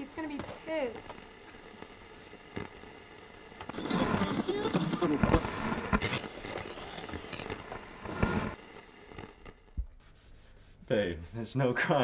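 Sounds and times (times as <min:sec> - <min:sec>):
radio static crackling: 0:00.0 - 0:10.0
snatches of radio voices: 0:00.3 - 0:08.6.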